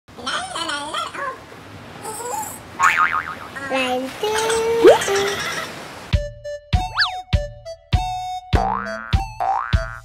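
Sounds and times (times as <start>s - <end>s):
squeaky cartoon vocalisation: 4.4s - 5.7s, 6.9s - 7.2s.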